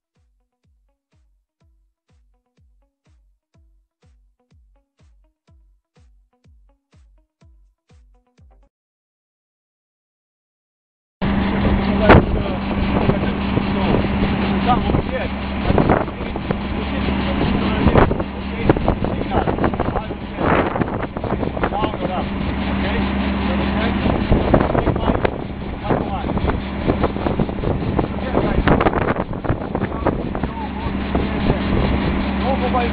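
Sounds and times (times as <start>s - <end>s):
indistinct voices: 11.2s - 32.9s
steady machine hum: 11.2s - 32.9s
wind buffeting microphone: 11.2s - 32.9s.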